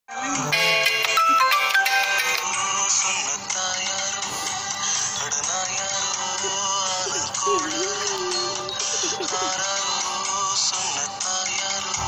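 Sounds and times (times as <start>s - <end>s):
phone playing melody: 0.1s - 4.0s, 4.6s - 10.2s.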